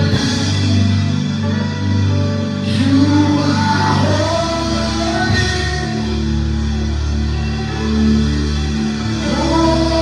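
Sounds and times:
live gospel band music: 0:00.0 - 0:10.0
man singing: 0:00.0 - 0:10.0.

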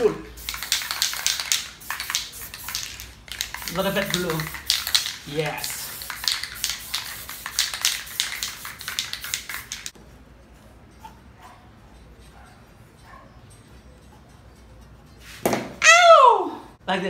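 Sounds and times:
spray can hissing bursts: 0:00.0 - 0:10.0.

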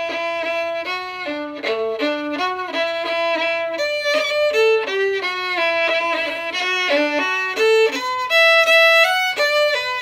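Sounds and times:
solo fiddle playing a reel: 0:00.0 - 0:10.0.

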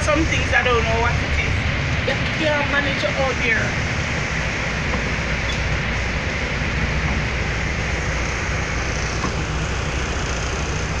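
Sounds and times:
engine and road rumble: 0:00.0 - 0:11.0
hiss of rain and water: 0:00.0 - 0:11.0.

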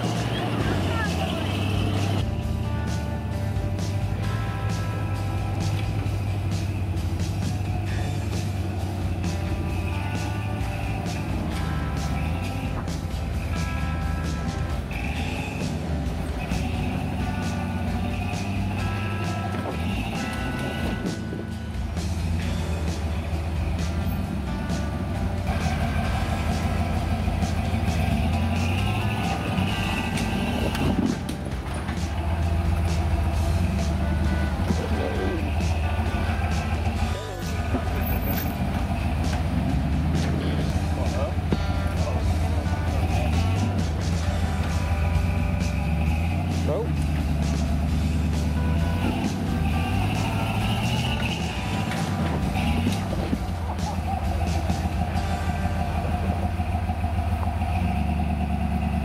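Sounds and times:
truck engine at low revs: 0:00.0 - 0:59.0.

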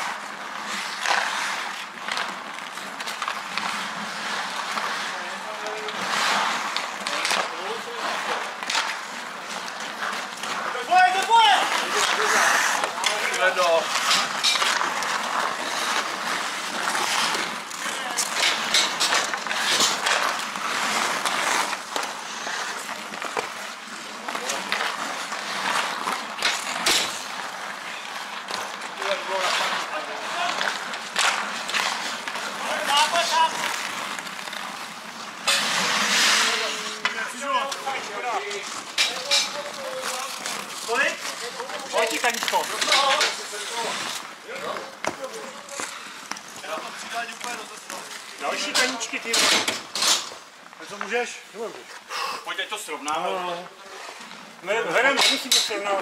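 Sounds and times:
hockey sticks clicking on puck: 0:00.0 - 0:52.1, 0:52.8 - 0:56.0
skate blades scraping on ice: 0:00.0 - 0:56.0.

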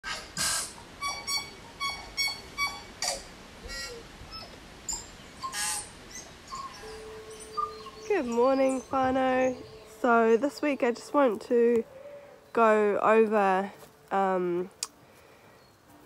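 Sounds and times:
birds chirping: 0:00.7 - 0:16.0.

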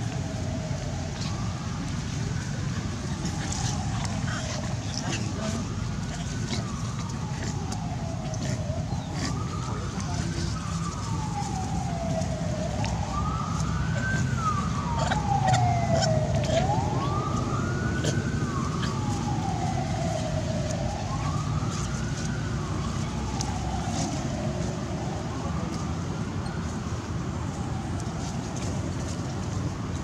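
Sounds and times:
wailing siren: 0:00.0 - 0:30.0.

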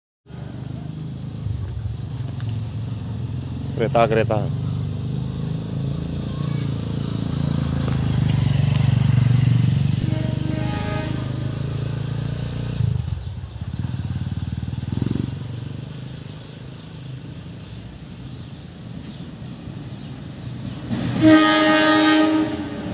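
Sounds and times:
rising engine whine: 0:00.3 - 0:16.2
vehicle engine rumbling: 0:00.3 - 0:22.9.

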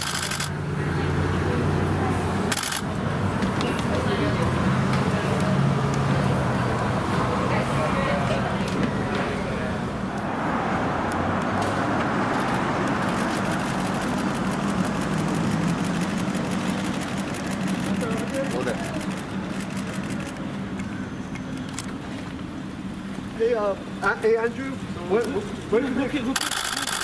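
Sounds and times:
street traffic engine hum: 0:00.0 - 0:27.0.

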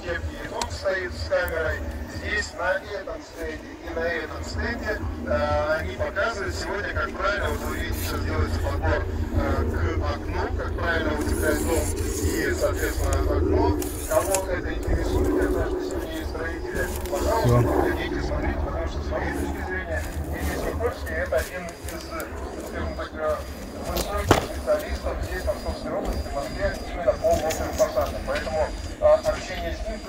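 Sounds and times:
people talking indistinctly: 0:00.0 - 0:30.0
steady low rumble: 0:00.0 - 0:30.0.

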